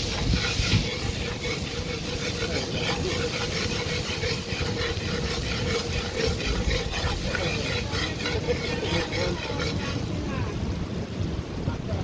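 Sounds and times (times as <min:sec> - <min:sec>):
metal spoon scraping pot: 0:00.0 - 0:10.1
food frying in hot oil: 0:00.0 - 0:12.0.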